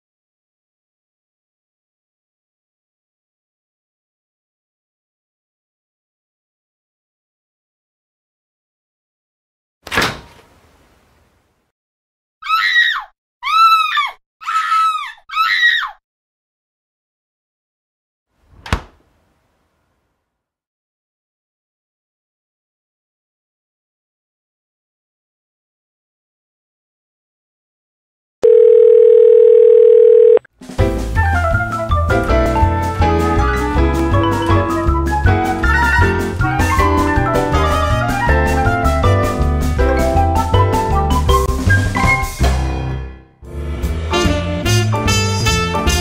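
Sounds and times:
shrill screams: 12.4s - 16.0s
electronic telephone tone: 28.4s - 30.5s
lively piano music with drums: 30.6s - 43.1s, 43.8s - 46.0s.

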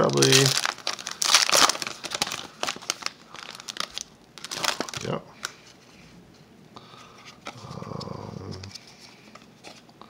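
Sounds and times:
foil wrapper crinkling and tearing: 0.0s - 5.6s.

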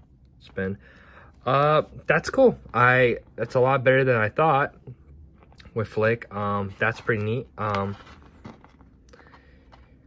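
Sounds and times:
plastic figure handling: 5.1s - 10.0s.

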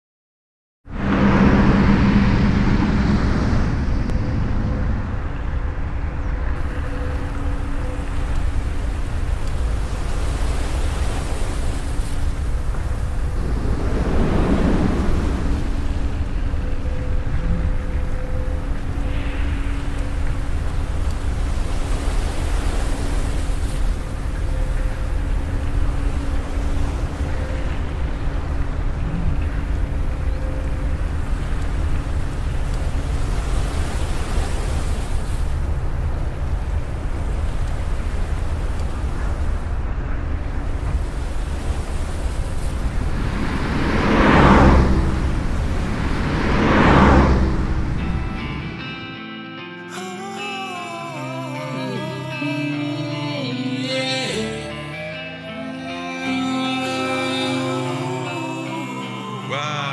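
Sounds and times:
steady rushing noise: 0.9s - 49.4s.

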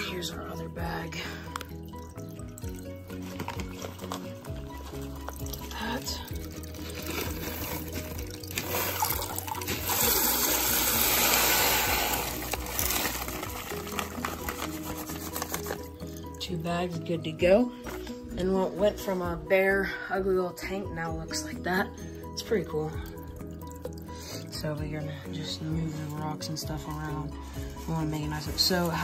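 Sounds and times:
background music: 0.0s - 29.0s
aquarium gravel pouring into tank: 0.8s - 16.3s.

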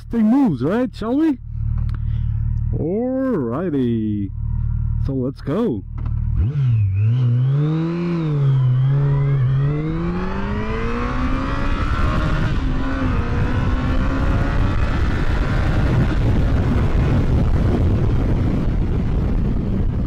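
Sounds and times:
motorcycle engine revving: 5.8s - 20.0s
wind noise: 7.7s - 20.0s.

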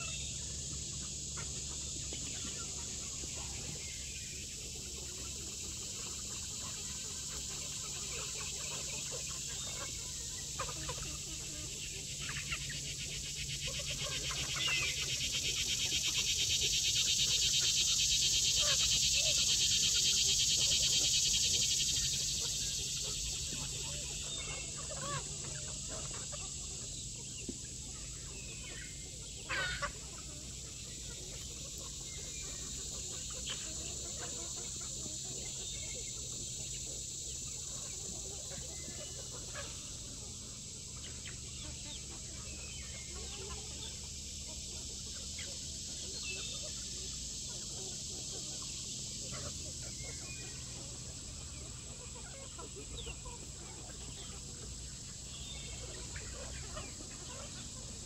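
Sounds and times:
chickens clucking and calling: 0.0s - 58.0s.

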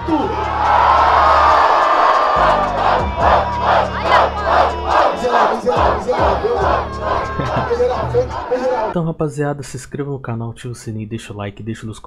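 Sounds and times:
crowd chanting shouts: 0.0s - 9.0s
crowd roaring: 0.0s - 9.0s
hip-hop beat bass: 0.0s - 9.1s.

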